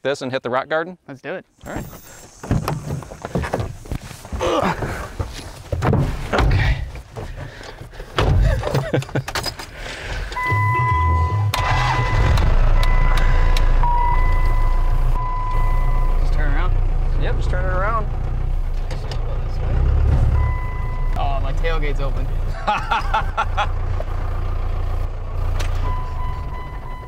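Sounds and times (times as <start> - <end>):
diesel engine rumbling: 1.7 - 27.0.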